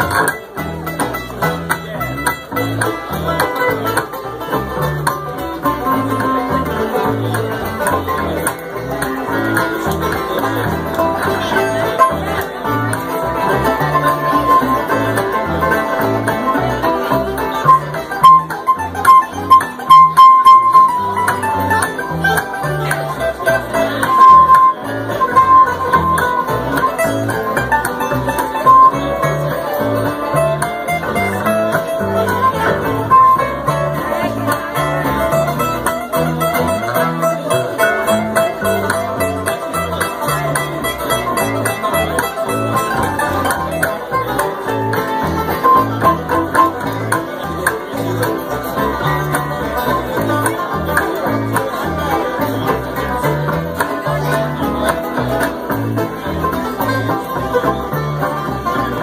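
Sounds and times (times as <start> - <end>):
acoustic guitar: 0.0 - 59.0
banjo: 0.0 - 59.0
mandolin: 0.0 - 59.0
upright bass: 0.0 - 59.0.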